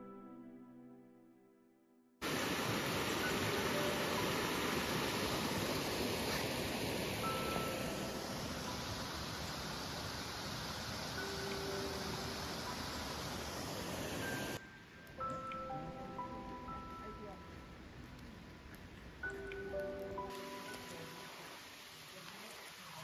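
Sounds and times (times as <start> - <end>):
stream rushing over rocks: 2.2 - 14.7, 18.4 - 23.0.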